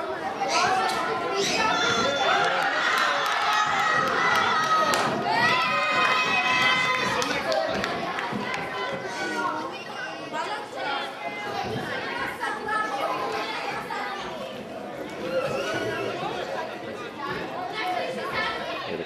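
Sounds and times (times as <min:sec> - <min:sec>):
people chattering: 0:00.0 - 0:19.0.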